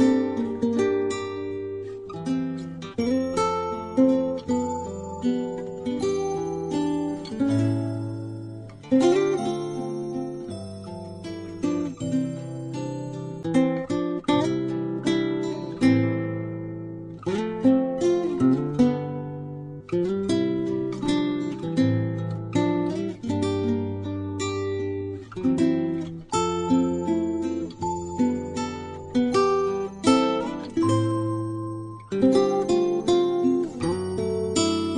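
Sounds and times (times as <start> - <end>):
acoustic guitar playing: 0.0 - 34.9.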